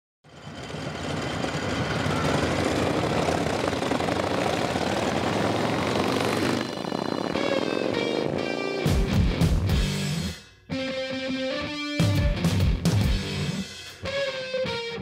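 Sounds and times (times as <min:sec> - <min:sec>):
wind rush: 0:01.0 - 0:09.7
guitar tones: 0:07.0 - 0:15.0.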